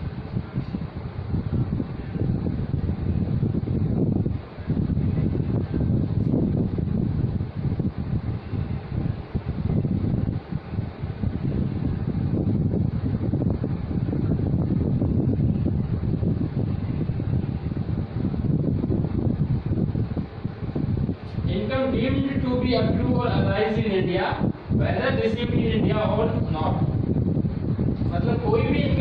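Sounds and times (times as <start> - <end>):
wind buffeting microphone: 0.0 - 29.0.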